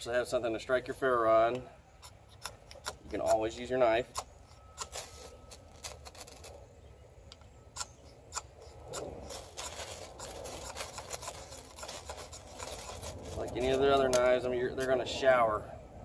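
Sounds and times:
knife scraping ferrocerium rod: 2.0 - 6.6, 7.8 - 15.0.

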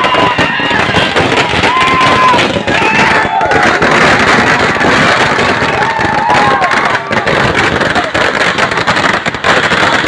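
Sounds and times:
firecrackers crackling: 0.0 - 10.0.

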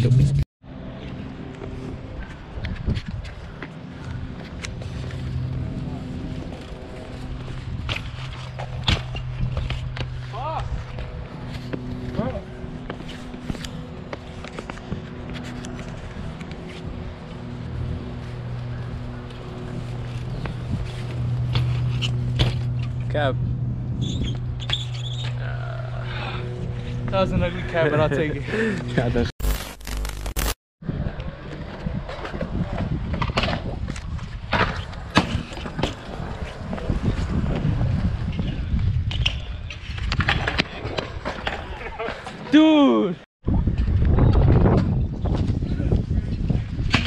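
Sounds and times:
bike tyres rolling on concrete: 1.0 - 23.2, 30.9 - 42.4.

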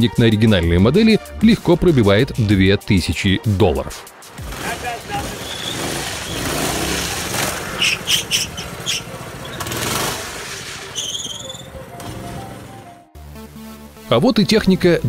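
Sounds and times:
wheels skidding on asphalt: 4.3 - 12.9
small gasoline engine running: 4.4 - 10.4
high tyre squeals: 4.4 - 12.8.

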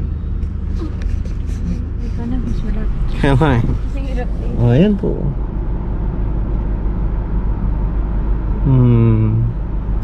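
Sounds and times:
car cabin noise: 0.0 - 8.1
car engine rumble: 0.0 - 10.0.

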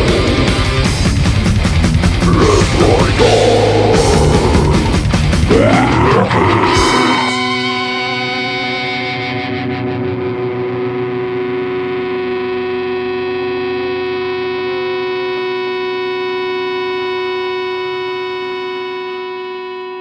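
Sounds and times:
drums: 0.0 - 8.0
distorted electric guitar chord: 0.0 - 20.0.

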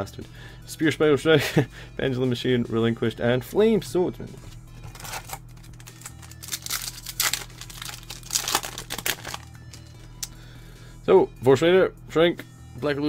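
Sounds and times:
foil wrapper crinkling and tearing: 4.9 - 9.9.

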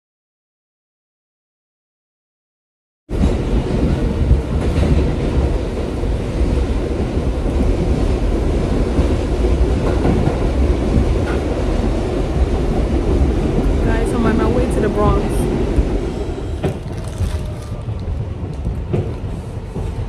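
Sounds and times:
subway train running on track: 3.1 - 20.0.

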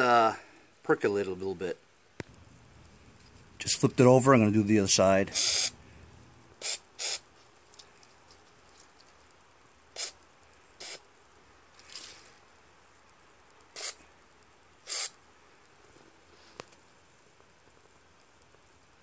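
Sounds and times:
aerosol spray hissing: 5.3 - 5.8, 6.6 - 7.2, 9.9 - 10.2, 10.8 - 11.0, 13.7 - 14.0, 14.8 - 15.2.

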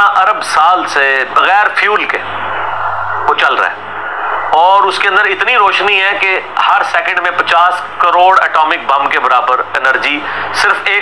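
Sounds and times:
low hum: 1.7 - 6.6
man lecturing: 4.6 - 11.0.

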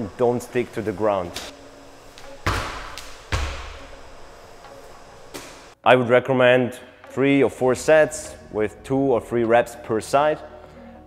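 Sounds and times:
medicine ball thud on wooden floor: 2.4 - 3.9.

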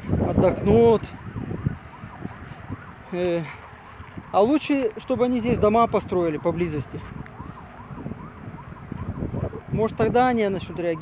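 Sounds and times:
faint wailing siren: 0.0 - 11.0.

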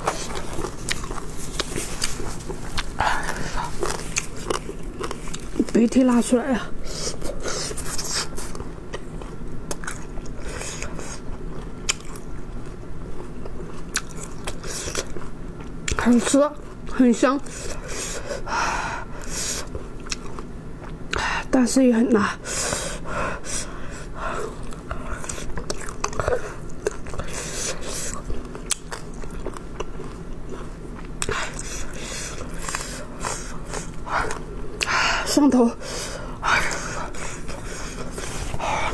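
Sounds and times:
chewing food: 0.0 - 6.4, 7.1 - 18.2, 19.2 - 21.2, 24.4 - 35.0.

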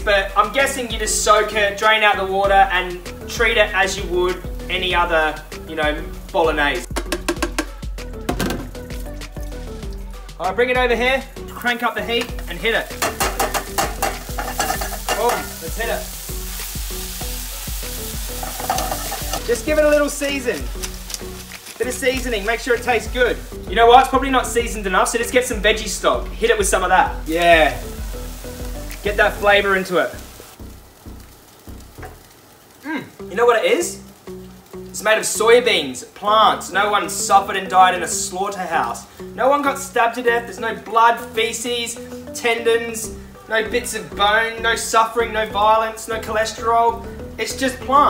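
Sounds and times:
food sizzling in a pan: 0.0 - 10.4, 11.2 - 48.0
background music with bass line: 0.0 - 32.3, 36.5 - 48.0.

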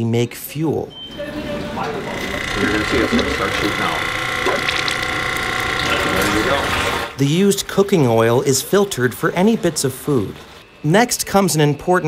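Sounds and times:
electric pump whining: 1.1 - 7.2.

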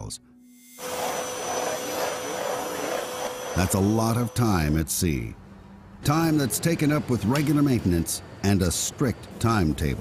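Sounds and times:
vacuum cleaner running: 0.8 - 4.8.

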